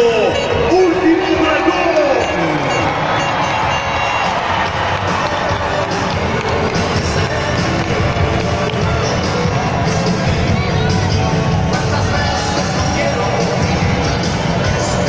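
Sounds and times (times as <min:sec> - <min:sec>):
large crowd cheering: 0:00.0 - 0:15.0
loud music over sound system: 0:00.0 - 0:15.0.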